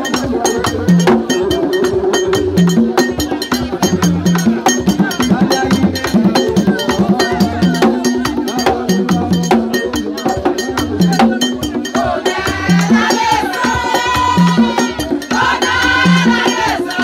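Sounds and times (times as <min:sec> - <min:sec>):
drums playing pitched pattern: 0:00.0 - 0:17.0
fast clicking percussion: 0:00.0 - 0:17.0
voices: 0:00.0 - 0:17.0.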